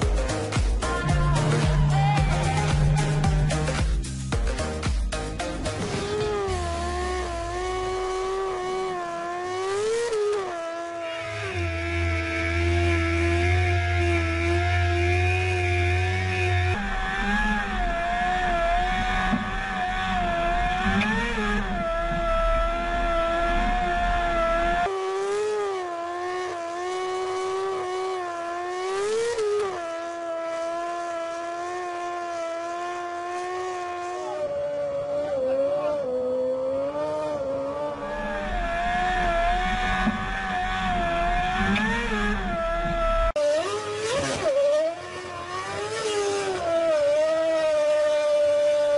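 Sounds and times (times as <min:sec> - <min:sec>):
racing car engine at high revs: 0:00.0 - 0:48.9.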